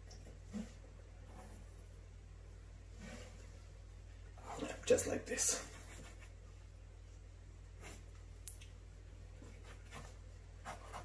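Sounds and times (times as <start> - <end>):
pencil scratching on paper: 9.6 - 11.0.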